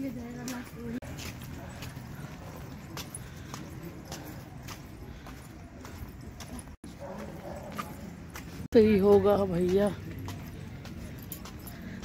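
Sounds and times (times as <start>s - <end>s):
footsteps on paved path: 0.0s - 12.0s.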